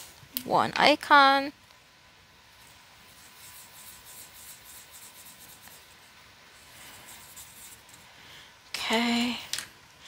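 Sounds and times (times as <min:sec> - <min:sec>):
marker scratching on paper: 0:03.0 - 0:08.0.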